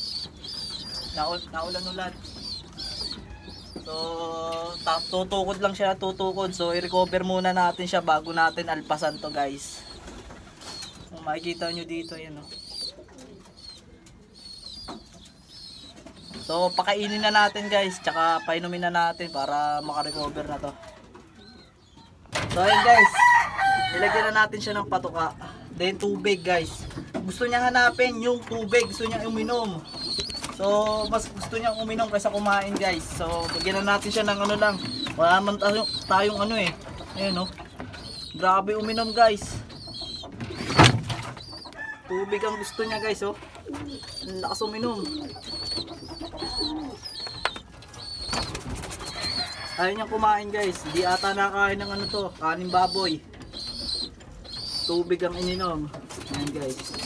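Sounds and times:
high bird chirp: 0.0s - 20.5s, 21.3s - 57.0s
pigeons cooing: 0.0s - 57.0s.

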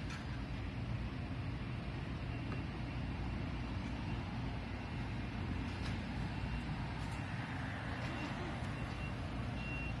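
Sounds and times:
street traffic rumble: 0.0s - 10.0s
faint high-pitched beeps: 2.2s - 5.1s, 6.3s - 10.0s.

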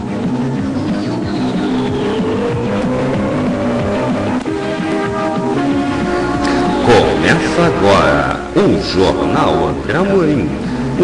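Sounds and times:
music with fast beat: 0.0s - 11.0s.

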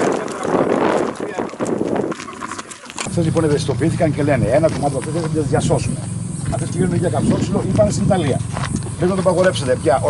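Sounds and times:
footsteps on dirt path: 0.0s - 10.0s
people talking outdoors: 0.0s - 10.0s.

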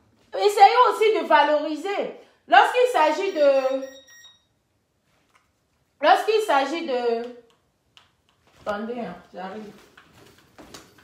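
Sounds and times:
woman speaking: 0.3s - 3.9s, 6.0s - 7.4s, 8.6s - 9.8s.

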